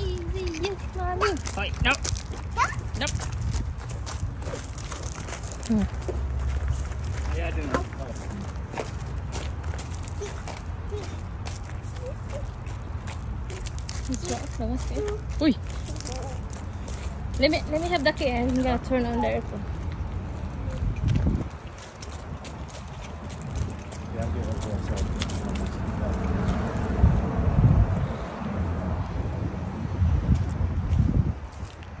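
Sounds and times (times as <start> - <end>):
footsteps crunching on gravel: 0.0 - 26.9, 30.3 - 32.0
steady low rumble: 0.0 - 32.0
wind buffeting microphone: 0.0 - 32.0.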